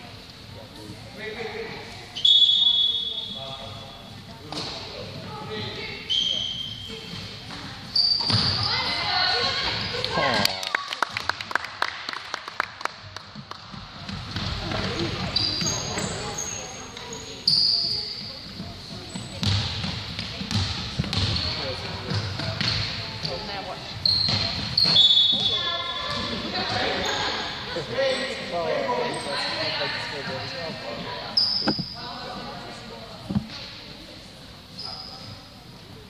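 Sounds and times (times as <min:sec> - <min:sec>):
sneakers squeaking: 0:02.0 - 0:10.1, 0:13.7 - 0:32.6, 0:34.7 - 0:35.6.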